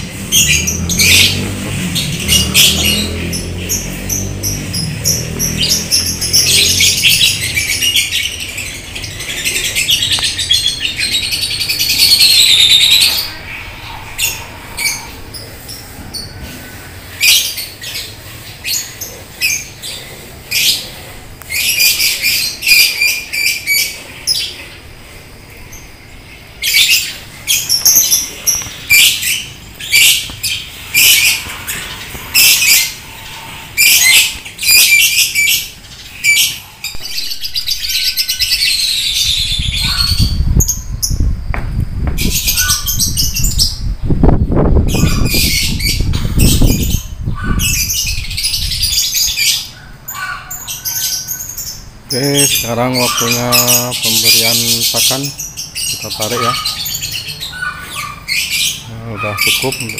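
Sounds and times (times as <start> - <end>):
birds chattering shrilly: 0.0 - 41.5, 42.2 - 59.9
steady low rumble: 9.8 - 17.2.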